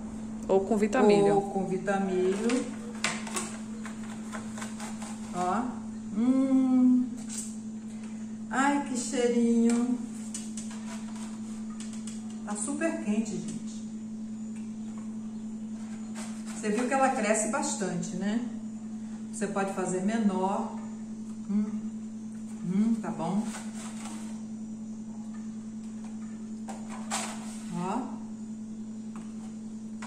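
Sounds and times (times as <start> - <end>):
steady low hum: 0.0 - 30.0
spatula scraping baking tray: 2.2 - 5.7, 10.6 - 12.1, 15.8 - 17.5, 23.2 - 24.4.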